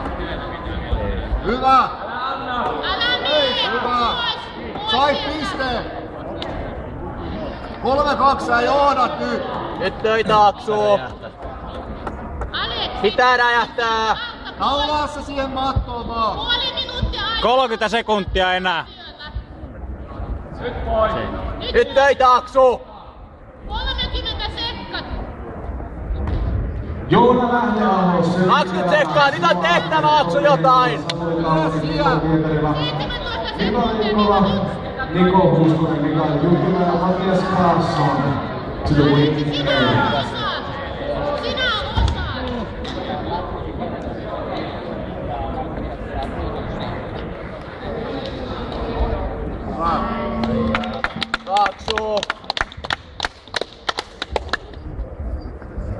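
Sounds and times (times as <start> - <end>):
faint indistinct voices: 0.0 - 55.9.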